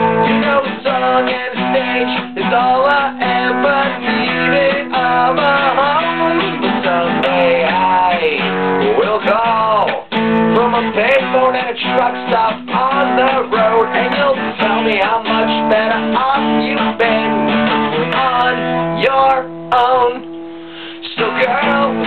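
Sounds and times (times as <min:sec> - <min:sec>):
acoustic guitar strumming: 0:00.0 - 0:22.0
man singing wordless melody: 0:00.0 - 0:22.0.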